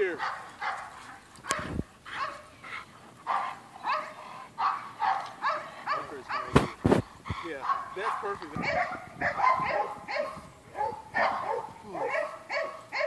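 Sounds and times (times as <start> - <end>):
dog barking rapidly: 0.1 - 0.9, 1.5 - 2.5, 3.3 - 6.8, 7.6 - 13.0.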